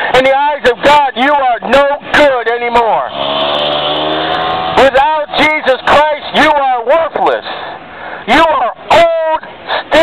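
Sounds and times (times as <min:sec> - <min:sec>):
vehicle engine driving past: 0:03.1 - 0:05.4.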